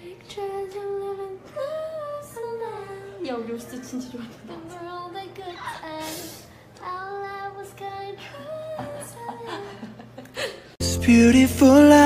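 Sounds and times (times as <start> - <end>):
women singing slow melody: 0.0 - 3.4, 4.0 - 10.0
loud recorded music: 10.8 - 12.0.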